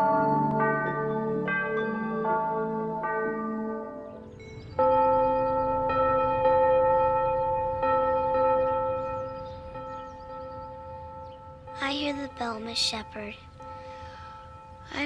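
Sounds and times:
large church bell tolling: 0:00.0 - 0:15.0.

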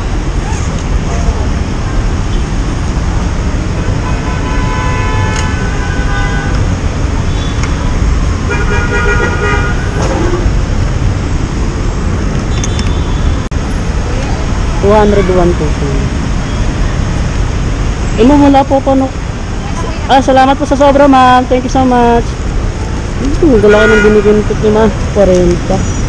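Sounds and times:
idling engines and traffic rumble: 0:00.0 - 0:26.0
vehicle horns honking: 0:03.8 - 0:07.7, 0:08.4 - 0:10.6, 0:23.5 - 0:24.6.

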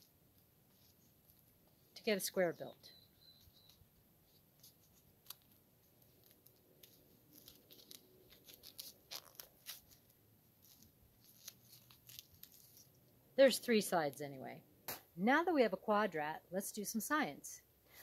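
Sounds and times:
duct tape crackling: 0:03.2 - 0:13.1.

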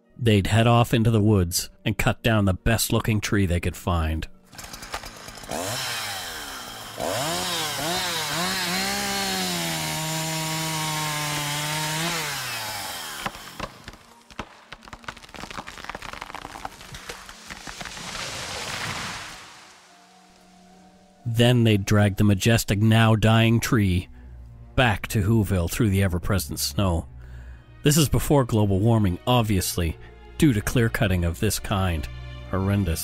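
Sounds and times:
chainsaw revving: 0:04.5 - 0:14.4
chainsaw cutting wood: 0:04.5 - 0:20.8.

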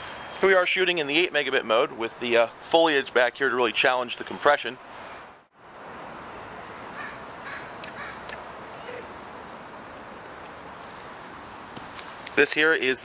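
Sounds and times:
outdoor background noise: 0:00.0 - 0:13.0
crow cawing: 0:07.0 - 0:09.0.

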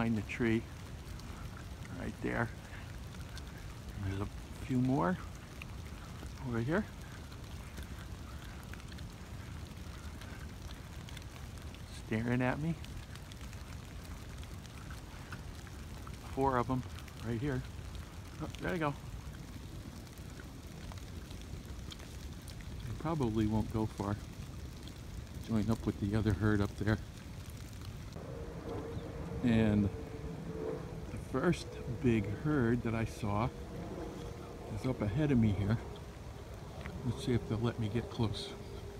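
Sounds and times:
faint drips ticking: 0:00.0 - 0:38.9
steady rain hiss: 0:00.0 - 0:38.9
faint steady hum: 0:27.0 - 0:38.9
low rumble: 0:27.0 - 0:38.9.

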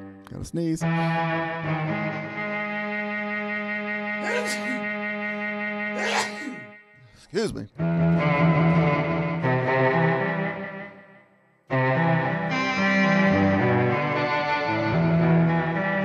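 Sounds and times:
electric guitar bowed-like notes: 0:00.8 - 0:06.7, 0:07.8 - 0:11.0, 0:11.7 - 0:16.0
breathy noise: 0:04.2 - 0:04.8, 0:06.0 - 0:07.7.

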